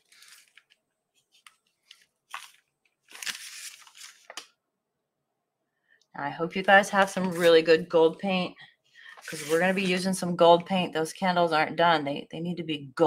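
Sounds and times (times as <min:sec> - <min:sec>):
paper rustling and scraping on table: 0:00.0 - 0:04.5, 0:06.6 - 0:07.8, 0:09.1 - 0:10.1.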